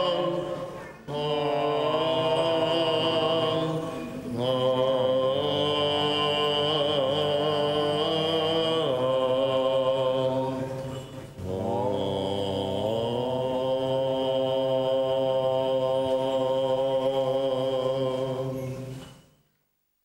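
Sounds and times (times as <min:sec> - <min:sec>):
liturgical chant with held notes: 0:00.0 - 0:19.4.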